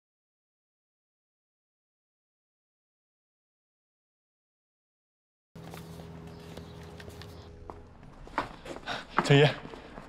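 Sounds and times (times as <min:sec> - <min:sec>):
footsteps on pavement: 0:05.6 - 0:10.0
low ambient hum: 0:05.6 - 0:10.0.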